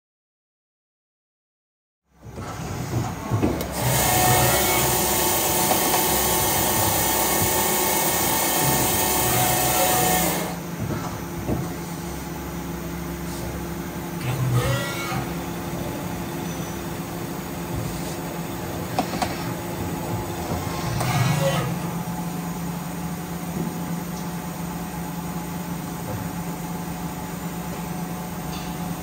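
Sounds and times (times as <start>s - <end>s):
lathe humming: 3.7s - 10.7s.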